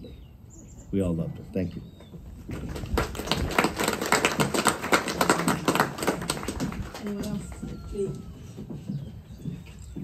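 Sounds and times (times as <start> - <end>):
people clapping: 2.5 - 8.2.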